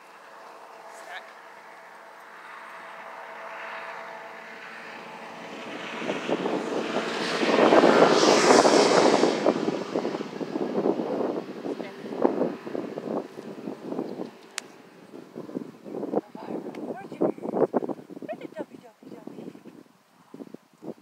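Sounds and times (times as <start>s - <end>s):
propeller airplane engine overhead: 0.0s - 18.6s.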